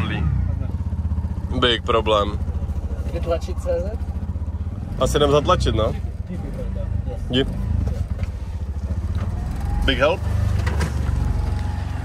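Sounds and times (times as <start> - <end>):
auto-rickshaw engine chugging: 0.0 - 12.0.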